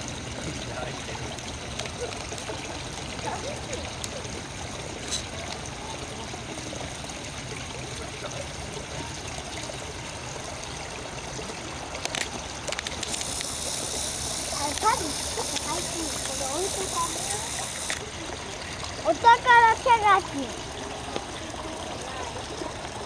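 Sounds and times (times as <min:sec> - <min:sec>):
water trickling in stone basin: 0:00.0 - 0:23.0
faint voices: 0:00.3 - 0:12.0, 0:13.5 - 0:23.0.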